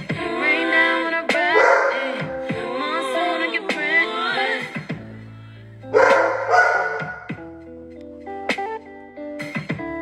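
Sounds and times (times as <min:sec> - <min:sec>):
music: 0:00.0 - 0:10.0
dog barking: 0:01.5 - 0:02.1, 0:05.9 - 0:07.3.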